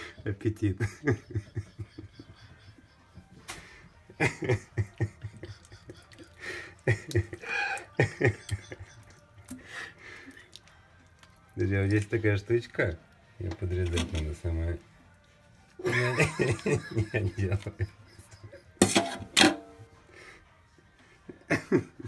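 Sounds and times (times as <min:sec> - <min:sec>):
wet squelching of fish innards: 0:09.4 - 0:12.8.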